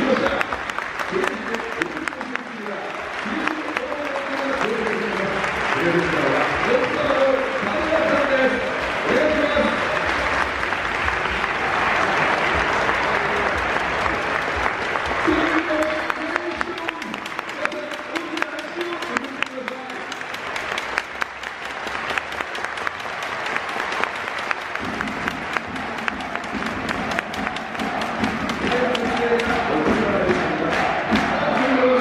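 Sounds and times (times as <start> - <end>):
crowd clapping: 0.0 - 32.0.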